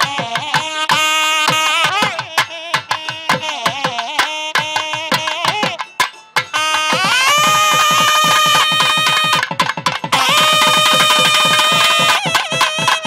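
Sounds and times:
quick drum strokes: 0:00.0 - 0:13.0.

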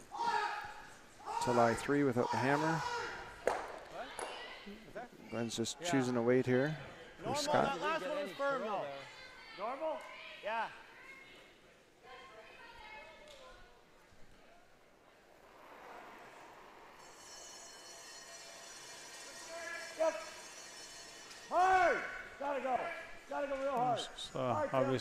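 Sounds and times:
people shouting: 0:00.0 - 0:03.3, 0:21.5 - 0:25.0.

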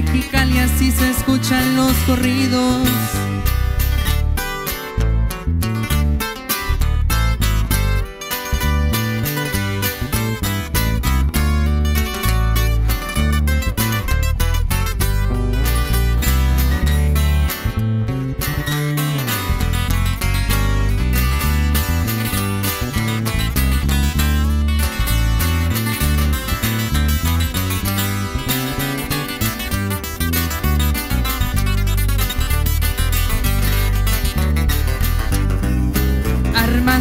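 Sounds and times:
acoustic guitars plucking and strumming: 0:00.0 - 0:37.0
electric bass walking line: 0:00.0 - 0:37.0.

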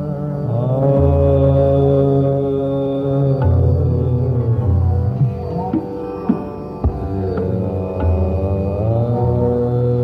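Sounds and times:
man singing classical vocal: 0:00.0 - 0:05.8, 0:06.8 - 0:10.0
tanpura drone: 0:00.0 - 0:10.0.

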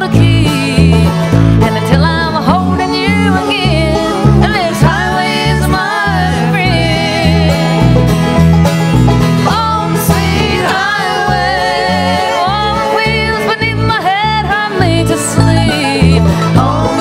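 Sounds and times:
banjo: 0:00.0 - 0:17.0
bluegrass band playing: 0:00.0 - 0:17.0
sliding lead melody: 0:00.0 - 0:17.0.

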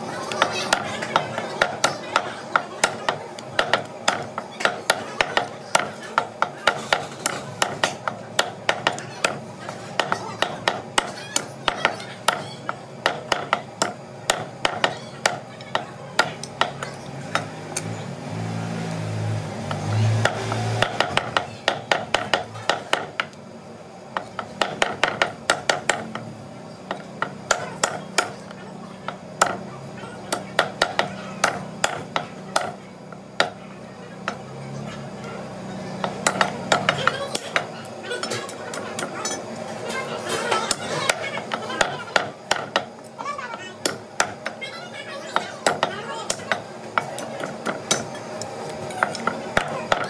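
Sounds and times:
cleaver chopping meat on wood: 0:00.3 - 0:17.9, 0:19.6 - 0:23.4, 0:24.2 - 0:28.4, 0:29.1 - 0:29.7, 0:30.3 - 0:33.6, 0:36.0 - 0:37.7, 0:40.3 - 0:43.0
cleaver chopping on wooden block: 0:30.3 - 0:32.8.

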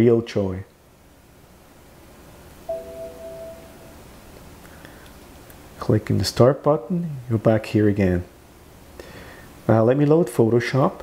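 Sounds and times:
faint room hiss: 0:00.0 - 0:11.0
short electronic chime: 0:02.7 - 0:04.2.

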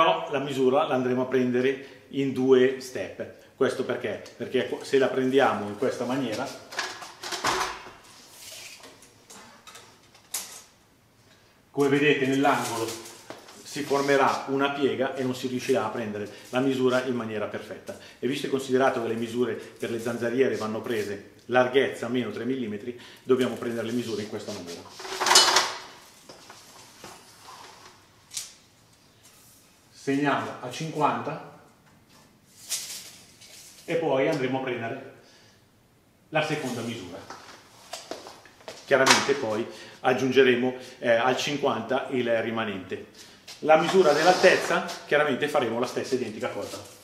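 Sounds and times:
hiss-like scrape: 0:43.8 - 0:45.0.

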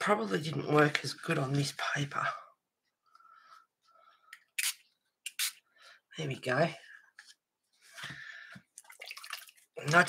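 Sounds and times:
spray bottle spritzing: 0:04.6 - 0:05.6.

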